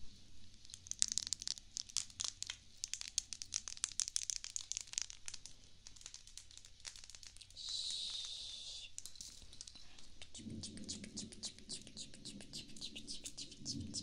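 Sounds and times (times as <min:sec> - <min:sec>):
makeup brushes crinkling and clicking: 0:00.6 - 0:10.1.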